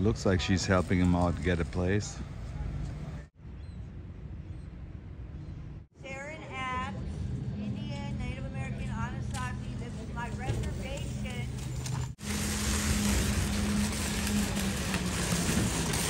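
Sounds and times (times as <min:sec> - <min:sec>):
loud rushing noise: 0:12.2 - 0:16.0.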